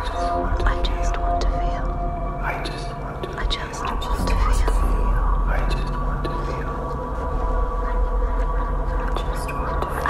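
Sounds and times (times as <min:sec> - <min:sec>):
layered whispered voices: 0:00.0 - 0:10.0
sustained drone: 0:00.0 - 0:10.0.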